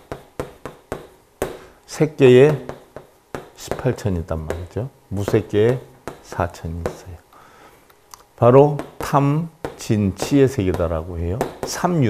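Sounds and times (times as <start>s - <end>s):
chalk tapping on chalkboard: 0.0s - 1.7s, 2.4s - 7.2s, 8.6s - 12.0s.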